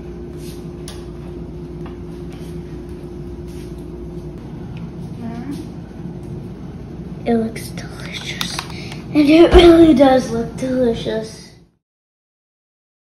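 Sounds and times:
steady low hum: 0.0s - 11.8s.

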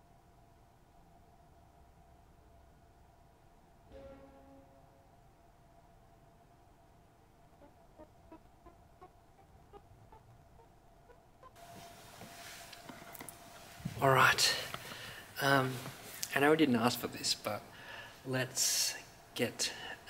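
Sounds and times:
faint staccato organ notes: 3.9s - 5.3s
soft pipe organ tone: 3.9s - 5.3s.

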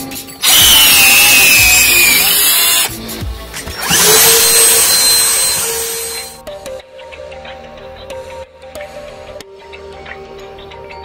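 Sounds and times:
handheld vacuum cleaner running: 0.4s - 2.9s, 3.8s - 6.4s
power drill boring into brick: 0.4s - 2.9s, 3.8s - 6.4s.

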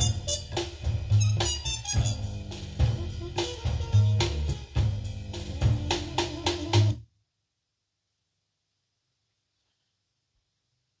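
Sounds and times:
very low hum: 0.0s - 7.0s.

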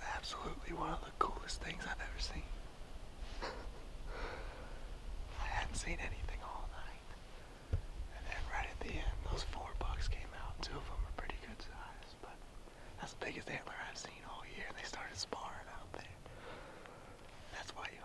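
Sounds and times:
man whispering: 0.0s - 2.6s, 5.3s - 7.2s, 8.1s - 16.3s, 17.3s - 18.0s.

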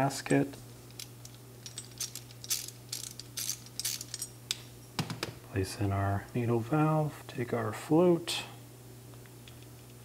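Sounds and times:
small metal parts clicking: 0.9s - 4.6s.

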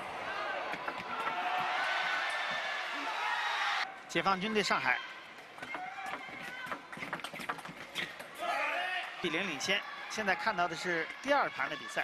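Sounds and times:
crowd noise in a hall: 0.0s - 12.0s.

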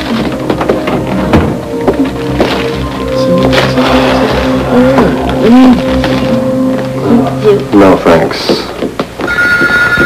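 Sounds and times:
low sustained score chord: 0.0s - 8.5s.

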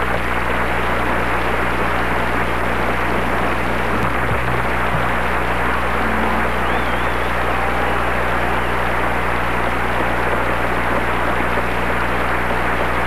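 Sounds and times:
tape hiss and static: 0.0s - 13.0s
low hum: 2.9s - 10.9s.

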